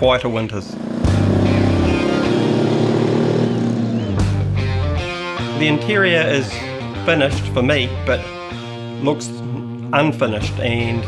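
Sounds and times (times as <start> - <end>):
hot rod engine driving by: 0.0 - 6.2.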